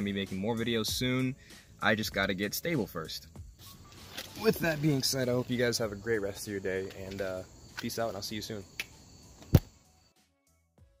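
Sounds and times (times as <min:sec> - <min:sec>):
loud sharp thump: 0:09.5 - 0:09.7.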